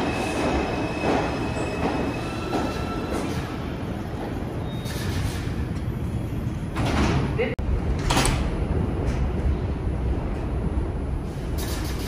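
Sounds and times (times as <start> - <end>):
train low rumble: 0.0 - 12.0.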